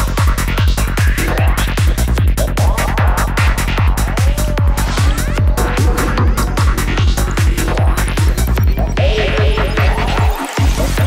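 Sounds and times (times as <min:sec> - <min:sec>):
psychedelic trance music: 0:00.0 - 0:11.0.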